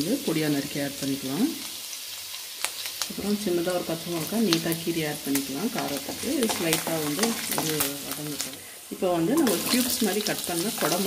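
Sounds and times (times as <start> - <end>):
ginger and garlic sizzling in oil: 0.0 - 11.0.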